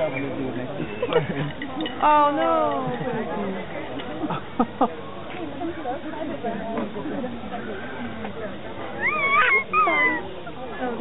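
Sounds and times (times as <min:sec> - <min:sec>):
infant squealing: 0:09.0 - 0:10.2.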